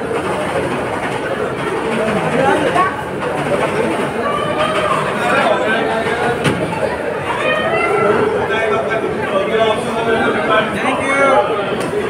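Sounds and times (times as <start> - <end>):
crowd murmur indoors: 0.0 - 12.0.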